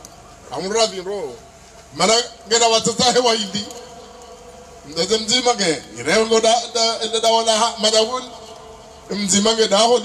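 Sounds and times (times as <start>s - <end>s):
man speaking over loudspeaker: 0.4s - 4.1s, 4.8s - 10.0s.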